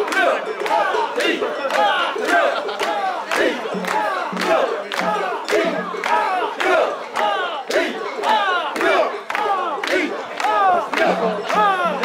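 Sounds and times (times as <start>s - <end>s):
crowd chanting in unison: 0.0s - 12.0s
hand claps: 0.0s - 12.0s.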